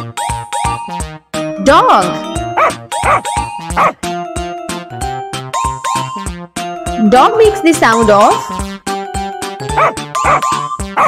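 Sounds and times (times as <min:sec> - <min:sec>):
children's background music: 0:00.0 - 0:11.0
dog yipping: 0:02.6 - 0:04.0, 0:09.8 - 0:11.0.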